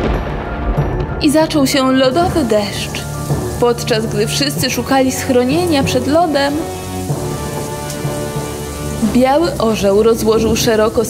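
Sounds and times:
heavy rain: 0.0 - 11.0
low thunder rumble: 0.0 - 11.0.

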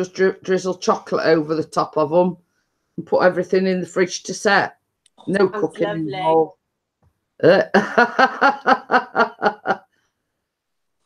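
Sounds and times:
woman laughing: 7.8 - 9.8.

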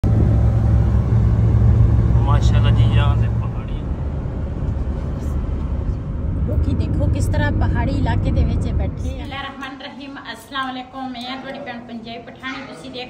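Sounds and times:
road and engine rumble in car: 0.0 - 9.3.

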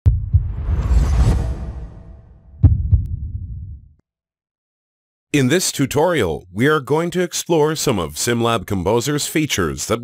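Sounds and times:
deep low rumble: 0.0 - 4.0
deep thuds: 0.1 - 1.3, 2.5 - 3.8
whoosh: 0.1 - 3.8.

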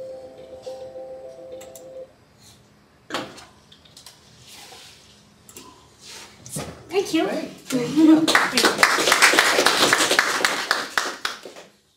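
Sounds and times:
audience applauding: 8.2 - 11.8.

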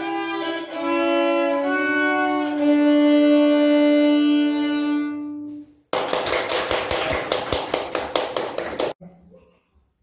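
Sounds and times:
violin bowed note: 0.0 - 5.6
audience clapping: 5.9 - 9.0.

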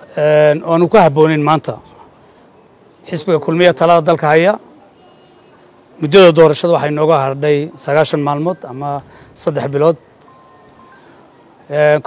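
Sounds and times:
man speaking: 0.0 - 2.0, 3.0 - 4.7, 6.0 - 10.0, 11.6 - 12.0
faint background noise: 0.0 - 12.0
faint thin tone: 10.0 - 11.6.

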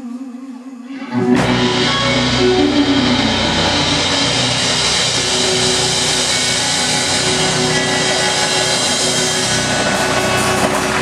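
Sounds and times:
blues band playing loudly: 1.1 - 11.0.

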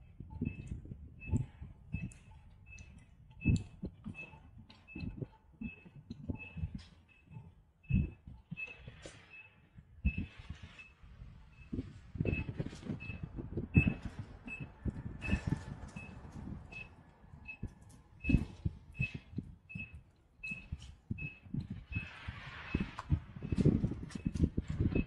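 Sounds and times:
footsteps on sidewalk: 11.7 - 25.0.

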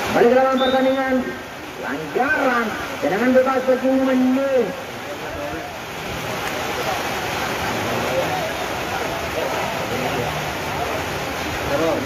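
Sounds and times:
faint distant voices and shouts: 0.1 - 12.0.

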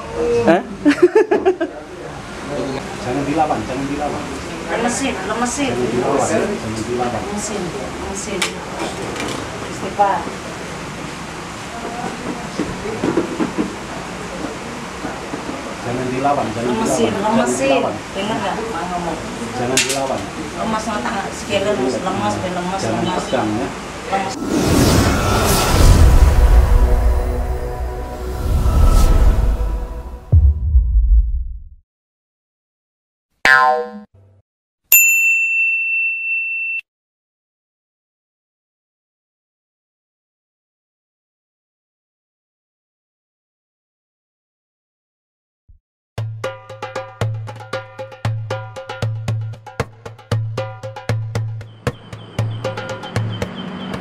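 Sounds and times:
short effect with many overtones: 24.3 - 31.6
low hum: 24.4 - 31.8
high bell-like ding: 34.9 - 36.9.

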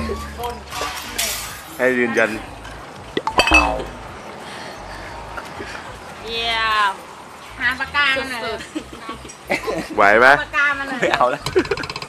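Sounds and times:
glass bottles clinking: 3.2 - 4.0.

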